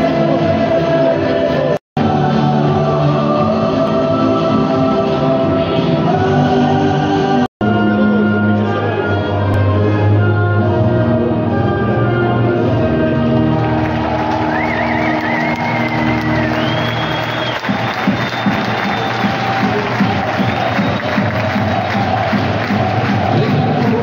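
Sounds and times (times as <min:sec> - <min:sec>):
anthem over arena loudspeakers: 0:00.0 - 0:24.0
crowd cheering and clapping: 0:13.2 - 0:24.0
crowd whistling: 0:13.5 - 0:24.0.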